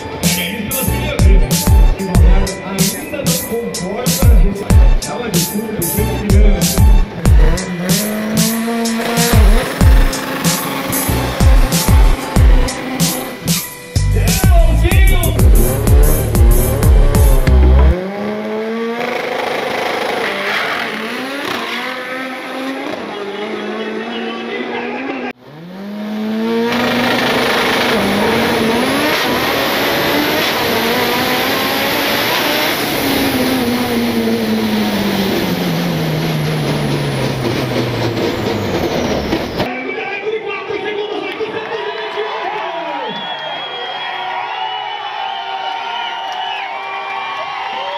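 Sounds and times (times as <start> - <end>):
drag car engine shifting gears: 0.0 - 39.7.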